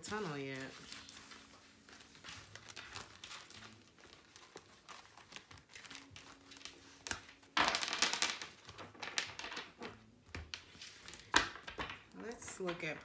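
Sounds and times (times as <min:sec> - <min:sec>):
cards shuffling: 0:00.0 - 0:13.0
cards clicking and rustling: 0:00.1 - 0:13.0.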